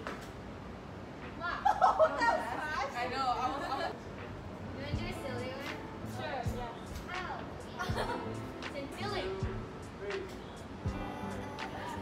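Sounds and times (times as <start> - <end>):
girls chattering: 5.0 - 9.6, 10.9 - 12.0.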